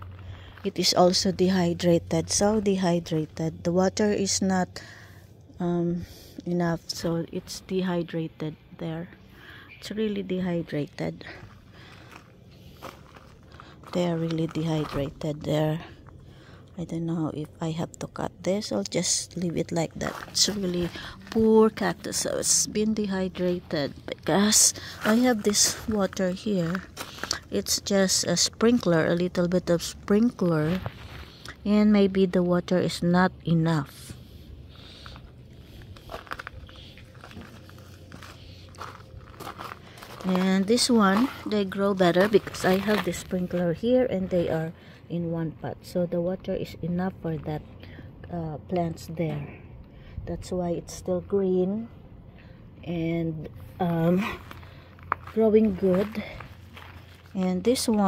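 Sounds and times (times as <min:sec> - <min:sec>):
footsteps on gravel: 0:00.0 - 0:04.4, 0:10.4 - 0:16.2, 0:18.6 - 0:32.0, 0:33.9 - 0:44.7, 0:53.6 - 0:58.0
woman speaking: 0:00.0 - 0:04.9, 0:05.5 - 0:11.6, 0:13.9 - 0:16.0, 0:16.8 - 0:30.9, 0:31.5 - 0:34.2, 0:40.1 - 0:52.0, 0:52.8 - 0:54.5, 0:55.2 - 0:56.5, 0:57.3 - 0:58.0.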